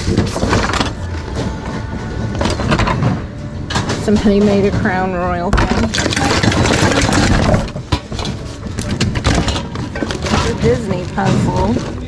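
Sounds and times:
junk clattering in a bin: 0.0s - 12.0s.

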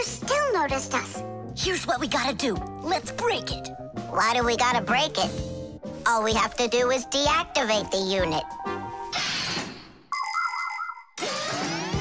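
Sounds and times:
electronic ringing jingle: 10.1s - 11.2s.

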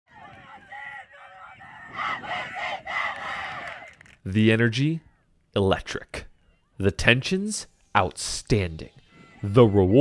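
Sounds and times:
girls shouting and cheering: 0.1s - 4.0s.

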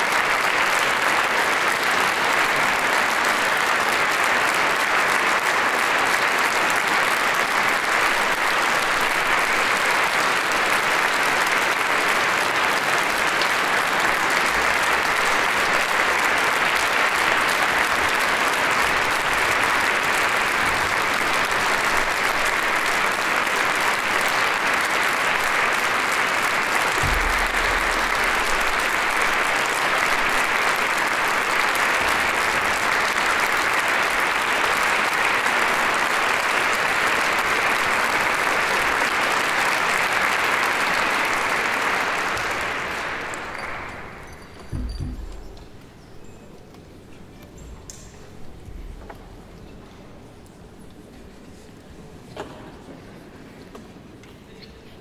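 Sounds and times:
audience applauding: 0.0s - 45.9s
low thump: 27.0s - 28.8s, 44.7s - 45.7s.

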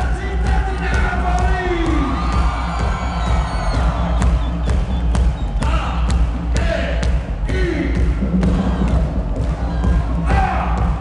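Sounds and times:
electronic dance music: 0.0s - 11.0s
crowd cheering: 0.8s - 6.3s.

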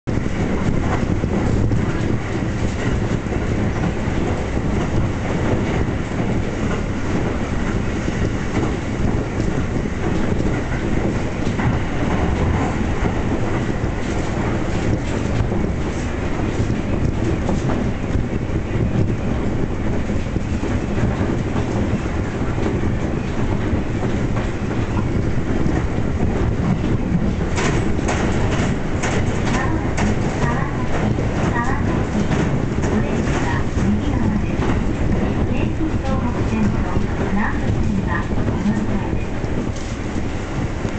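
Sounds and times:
train clickety-clack: 0.0s - 40.9s
train wheels rumbling on rails: 0.0s - 40.9s.

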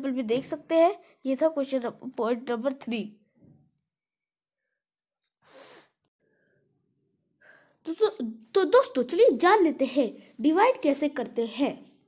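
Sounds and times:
person sharp breath or sneeze: 5.4s - 6.0s.

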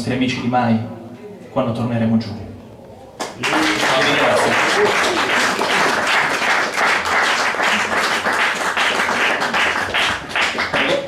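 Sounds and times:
audience applauding: 3.2s - 11.0s.

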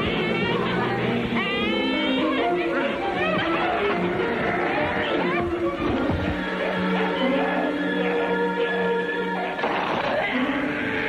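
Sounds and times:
horror film score of held notes: 0.0s - 11.0s
distorted voice shrieking: 3.2s - 11.0s.

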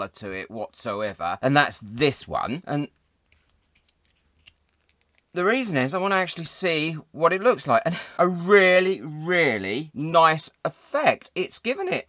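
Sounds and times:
faint clicks and crackles: 2.9s - 5.4s.

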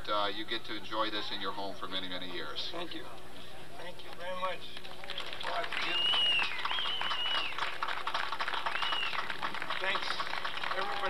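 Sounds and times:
audience applauding: 4.8s - 11.0s
long high whistles: 5.8s - 7.8s, 8.7s - 9.3s.

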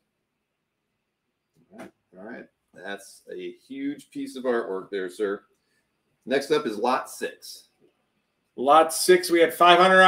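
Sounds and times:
man speaking: 1.8s - 5.4s, 6.3s - 7.7s, 8.6s - 10.0s.

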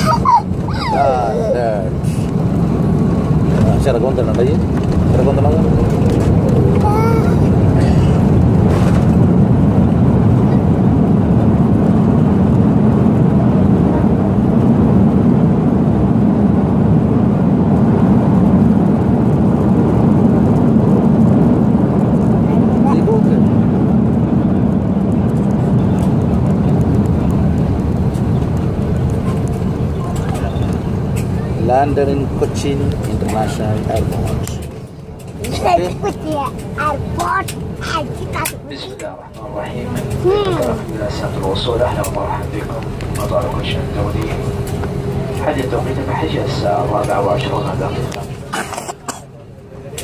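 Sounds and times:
jet engine and runway rumble: 0.0s - 50.0s.

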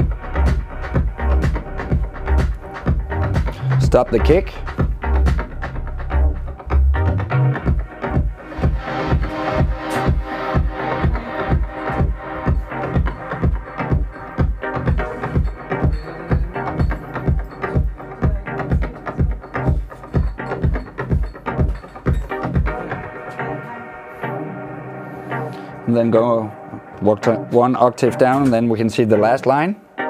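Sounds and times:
kick drum: 0.0s - 23.0s
deep bass line: 0.0s - 23.6s
sustained synth chords: 0.0s - 28.4s.

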